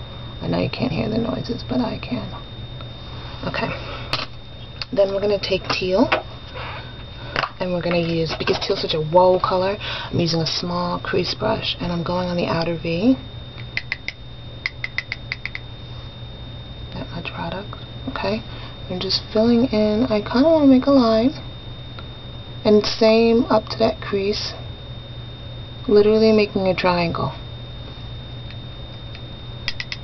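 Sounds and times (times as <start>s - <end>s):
faint high-pitched whine: 0.0s - 30.0s
low background hum: 0.0s - 30.0s
sharp clicks: 13.7s - 15.6s, 29.7s - 30.0s.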